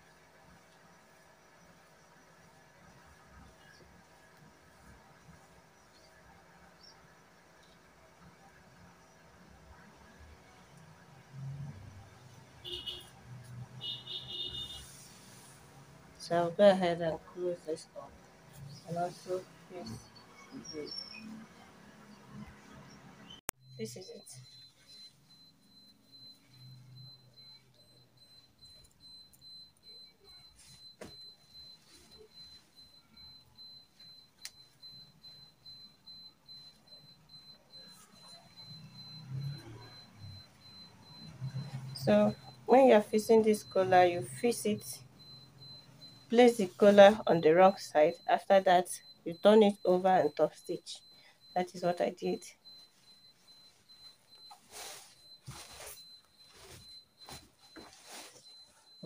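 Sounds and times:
fabric rustling: 0:52.9 - 0:59.0.

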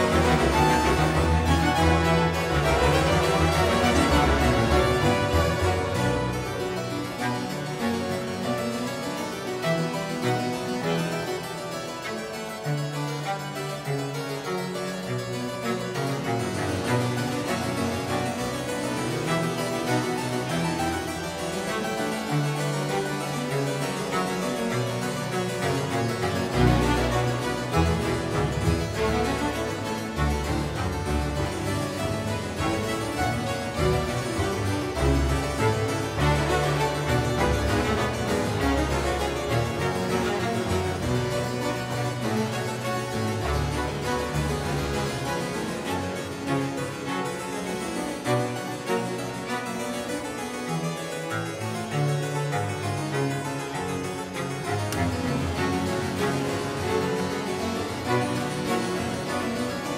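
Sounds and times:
harpsichords playing: 0:00.0 - 0:59.9
string ensemble: 0:00.0 - 0:59.9.

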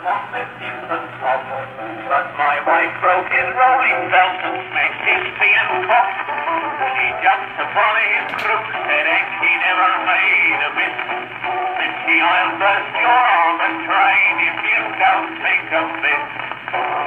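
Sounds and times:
old cylinder record music: 0:00.0 - 0:17.0.

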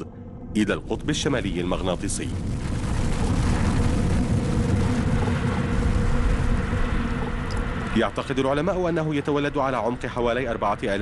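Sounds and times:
deep rumble: 0:00.0 - 0:11.0.

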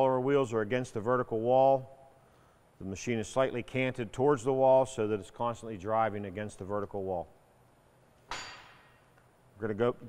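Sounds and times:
man speaking: 0:02.8 - 0:07.4, 0:09.6 - 0:10.0
metallic clank on steel: 0:08.3 - 0:09.0.

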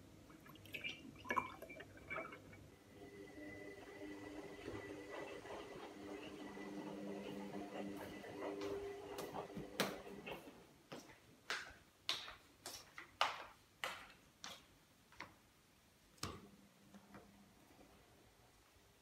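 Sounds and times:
footsteps on hard floor: 0:08.6 - 0:14.6.

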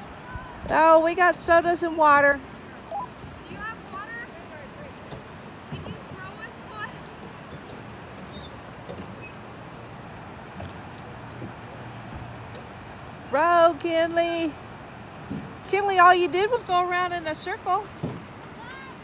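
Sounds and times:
distant voices: 0:00.0 - 0:19.0
oars splashing: 0:00.0 - 0:19.0
wind and water wash: 0:00.0 - 0:19.0.

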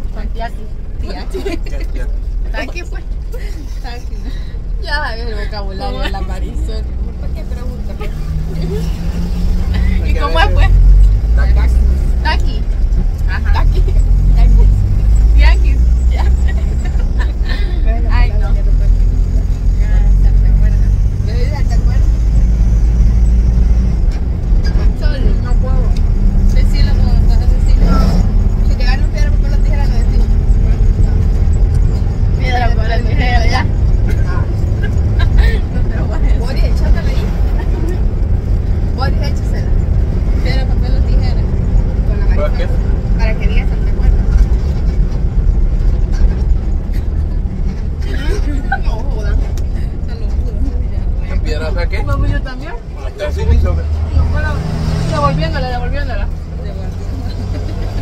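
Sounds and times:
bus engine rumble: 0:00.0 - 0:58.0
people's voices: 0:00.0 - 0:58.0.

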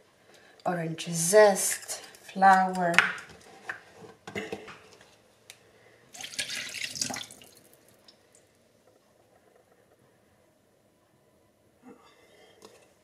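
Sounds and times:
liquid pouring: 0:06.2 - 0:08.0.

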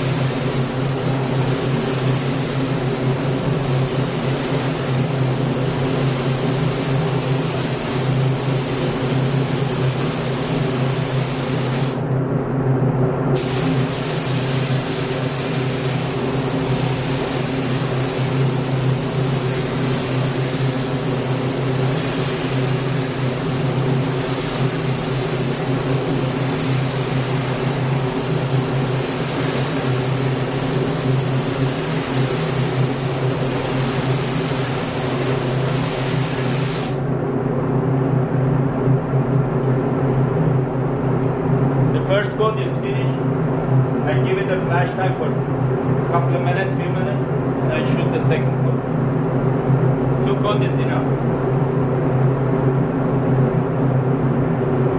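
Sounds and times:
spray gun hissing: 0:00.0 - 0:12.1, 0:13.4 - 0:37.1
low machine hum: 0:00.0 - 0:54.9.

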